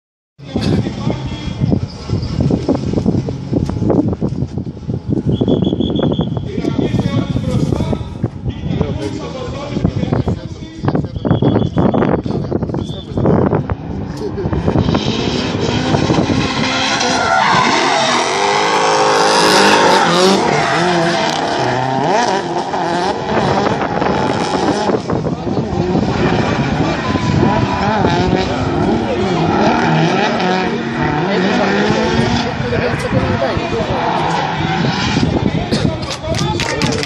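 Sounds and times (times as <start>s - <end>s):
car engines revving: 0.4s - 37.0s
voices: 5.8s - 37.0s
tyres squealing: 16.6s - 22.9s.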